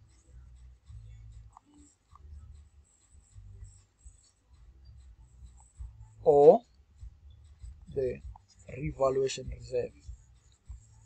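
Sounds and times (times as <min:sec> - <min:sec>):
stylus strokes on a tablet: 0:00.0 - 0:06.5, 0:07.4 - 0:11.0.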